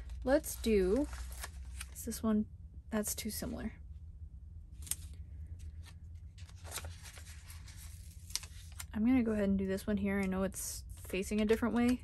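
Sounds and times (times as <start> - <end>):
paper rustling and crinkling: 0.0 - 2.2, 4.8 - 8.9, 10.9 - 12.0.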